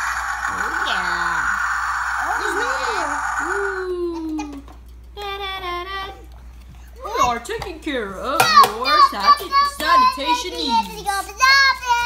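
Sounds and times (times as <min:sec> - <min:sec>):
steady noise: 0:00.0 - 0:04.1.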